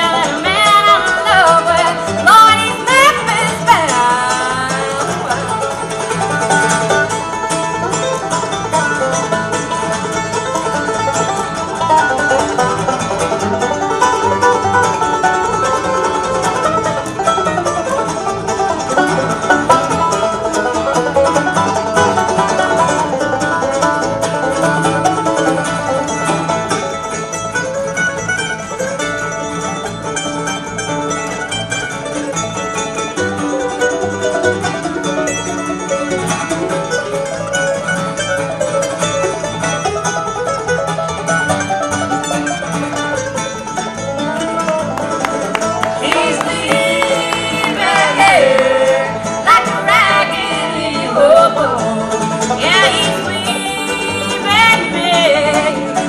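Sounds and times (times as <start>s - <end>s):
bluegrass band playing: 0.0s - 56.0s.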